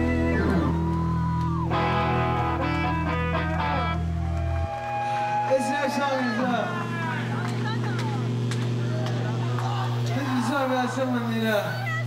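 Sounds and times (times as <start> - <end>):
man singing into a microphone: 0.0 - 0.8
low drone: 0.0 - 12.0.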